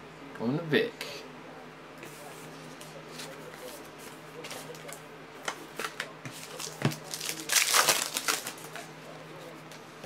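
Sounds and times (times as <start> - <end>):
foil wrapper crinkling: 5.9 - 8.8.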